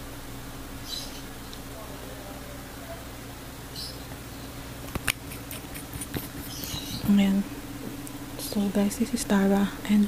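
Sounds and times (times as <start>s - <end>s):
low electrical hum: 0.0s - 10.0s
wet clicks and lip smacks: 4.9s - 6.0s.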